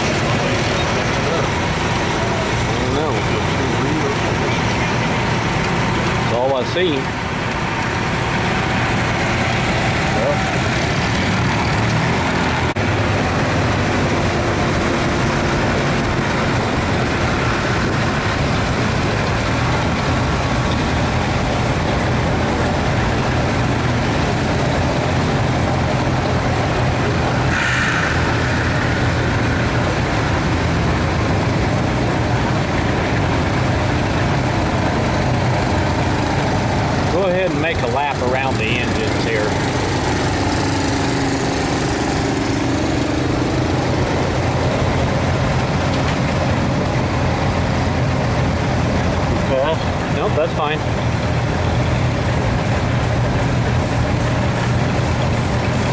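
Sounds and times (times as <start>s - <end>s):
vehicle engine running: 0.0s - 55.9s.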